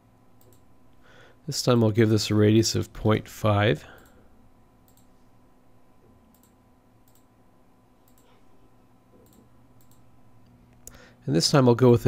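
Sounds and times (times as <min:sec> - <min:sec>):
faint electrical hum: 0:00.0 - 0:12.0
computer mouse clicks: 0:00.4 - 0:00.7, 0:04.8 - 0:05.1, 0:06.3 - 0:07.3, 0:08.0 - 0:08.4, 0:09.1 - 0:10.1.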